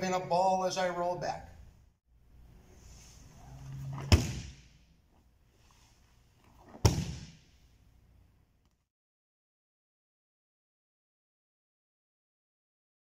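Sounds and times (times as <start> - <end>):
arms slapping a mat: 6.8 - 7.4.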